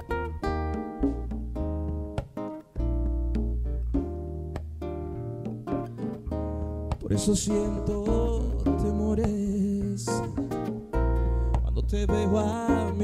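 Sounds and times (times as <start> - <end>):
acoustic guitar plucked notes: 0.0 - 13.0
electric bass guitar low notes: 0.0 - 13.0.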